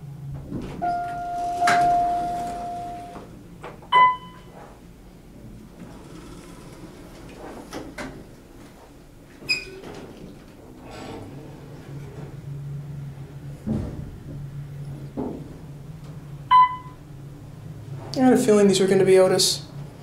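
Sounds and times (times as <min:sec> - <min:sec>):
elevator doors sliding: 0:00.0 - 0:20.0
short high ding: 0:00.8 - 0:03.2
elevator arrival chime: 0:00.8 - 0:03.3, 0:03.9 - 0:04.6, 0:16.5 - 0:17.0.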